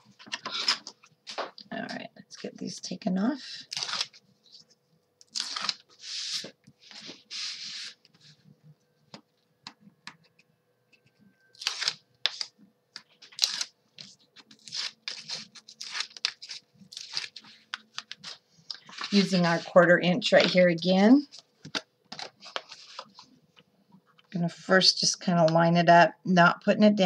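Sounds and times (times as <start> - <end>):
tape liner peeling rips: 5.3 - 5.8, 11.6 - 12.5, 13.3 - 17.4.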